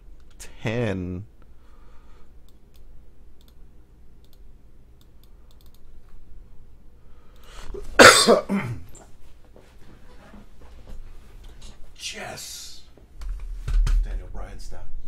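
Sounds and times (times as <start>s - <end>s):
faint clicks: 2.4s - 3.6s, 4.2s - 6.2s
man coughing loudly: 8.0s - 8.9s.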